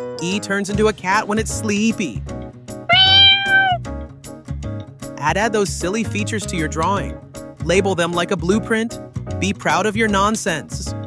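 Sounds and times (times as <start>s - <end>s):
cat meowing: 2.9s - 3.8s.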